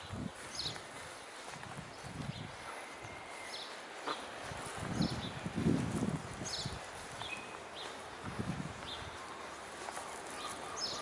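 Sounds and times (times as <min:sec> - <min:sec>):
footsteps on grass: 0:00.0 - 0:11.0
bird chirps: 0:06.4 - 0:08.0, 0:10.3 - 0:11.0.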